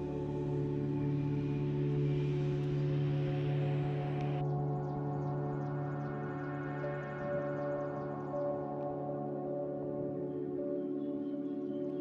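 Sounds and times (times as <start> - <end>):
ambient music with bell-like tones: 0.0 - 12.0.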